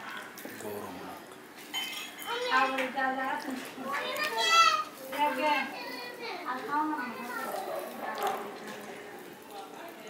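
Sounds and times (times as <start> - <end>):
children calling and chattering: 2.2 - 10.0.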